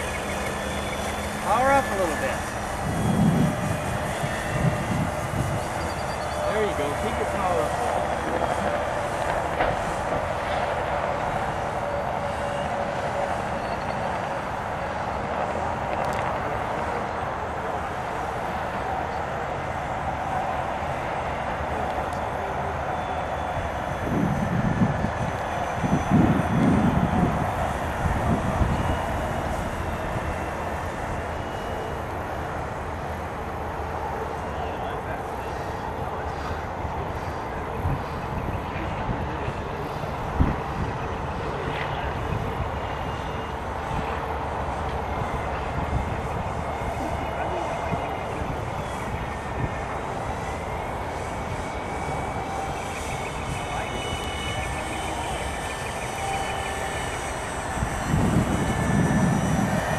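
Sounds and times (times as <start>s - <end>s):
model aircraft engine droning: 0.0s - 59.9s.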